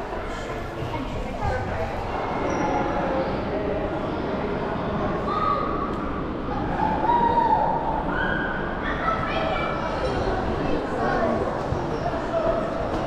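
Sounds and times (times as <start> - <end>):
indistinct chatter of many people: 0.0 - 13.0.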